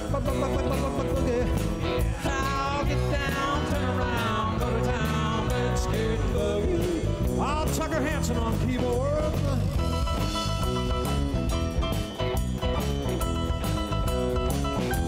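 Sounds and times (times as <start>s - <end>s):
bass: 0.0s - 15.0s
drum kit: 0.0s - 15.0s
electric guitar lead: 0.0s - 15.0s.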